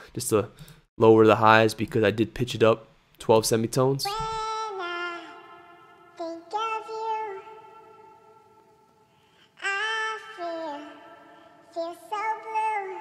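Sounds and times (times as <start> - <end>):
pitched-up singing voice: 4.0 - 8.7, 9.6 - 13.0.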